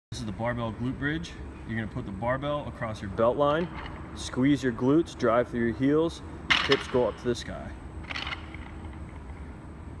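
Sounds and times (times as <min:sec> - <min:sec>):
low room hum: 0:00.1 - 0:10.0.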